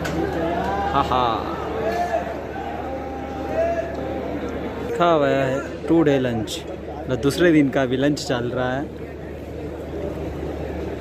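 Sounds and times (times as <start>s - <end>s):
stadium background rumble: 0.0s - 11.0s.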